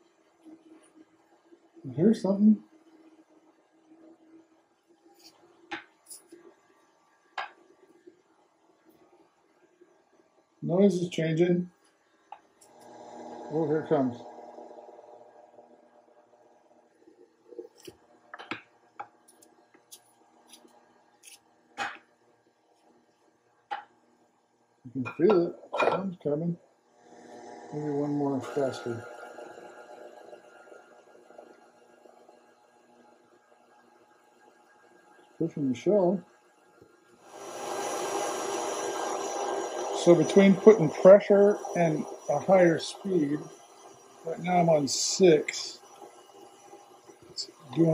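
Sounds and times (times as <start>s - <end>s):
stand mixer motor hum: 12.6s - 16.7s, 27.0s - 32.1s, 37.3s - 44.4s.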